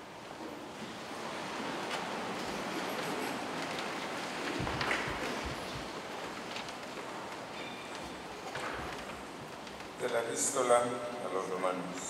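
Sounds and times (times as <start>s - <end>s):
room noise hiss: 0.0s - 12.0s
soft knocks and shuffles: 0.4s - 10.3s.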